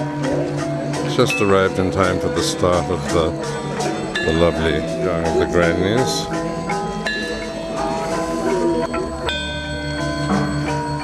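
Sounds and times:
gamelan metallophones ringing: 0.0s - 11.0s.

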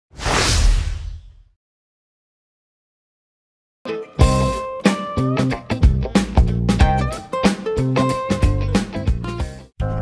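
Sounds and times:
swoosh sound effect: 0.1s - 1.5s.

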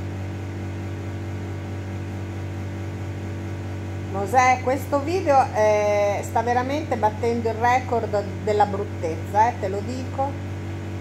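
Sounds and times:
appliance motor humming: 0.0s - 11.0s.

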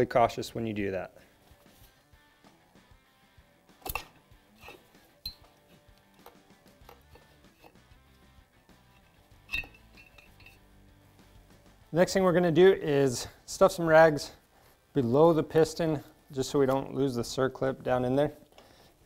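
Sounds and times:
faint background music: 0.0s - 19.0s
light metal clinks and knocks: 3.8s - 7.8s, 8.8s - 10.7s.

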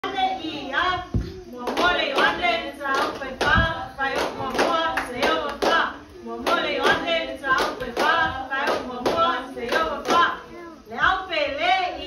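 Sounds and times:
hands clapping: 1.6s - 10.3s
voices chanting together: 1.6s - 11.5s.

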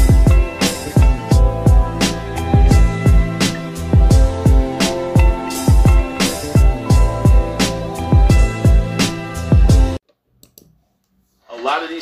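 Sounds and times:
intro music: 0.0s - 10.0s.

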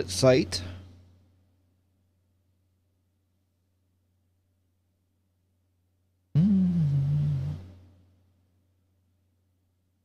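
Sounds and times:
man humming or groaning: 6.4s - 7.7s.

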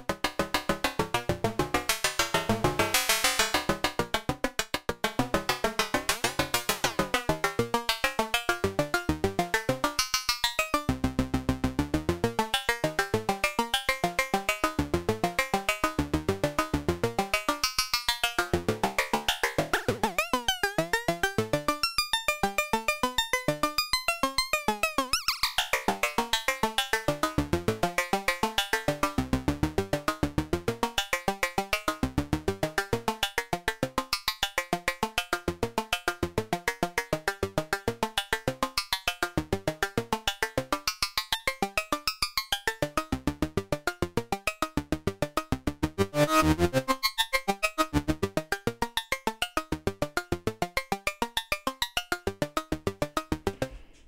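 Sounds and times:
synth notes sequence: 44.6s - 48.5s.

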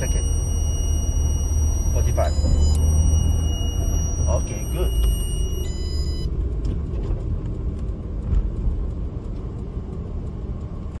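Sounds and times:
thin high whine: 0.0s - 6.1s
car cabin engine and tyre rumble: 0.0s - 11.0s.

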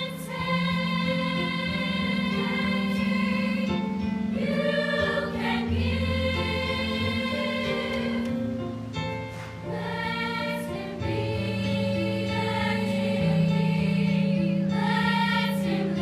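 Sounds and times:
mixed choir singing chords: 0.0s - 16.0s.

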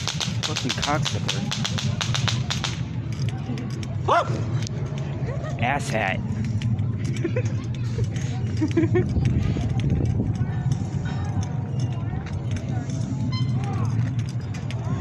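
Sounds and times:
scattered clicks: 0.0s - 5.2s, 6.2s - 15.0s
person laughing: 7.1s - 9.3s.

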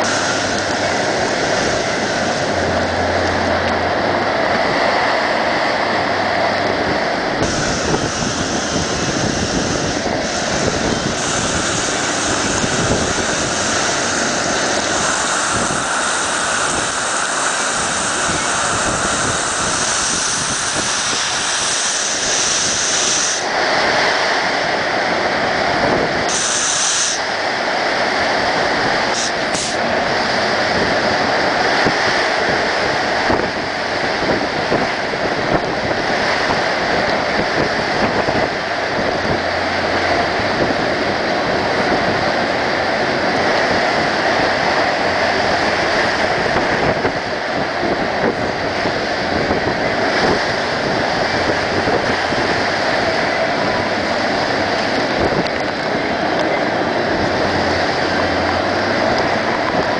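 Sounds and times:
heavy driving rain: 0.0s - 59.9s
strong wind: 0.0s - 59.9s.

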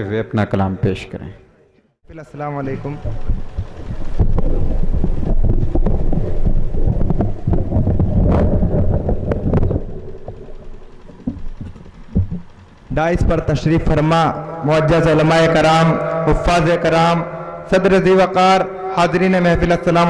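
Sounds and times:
low rumble: 2.6s - 19.0s
microphone handling thumps: 3.0s - 12.6s
microphone clicks: 3.0s - 14.0s.

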